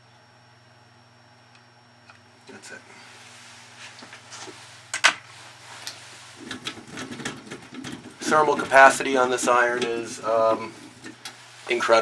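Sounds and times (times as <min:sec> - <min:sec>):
low steady hum: 0:00.0 - 0:12.0
rustling handling noise: 0:03.0 - 0:12.0.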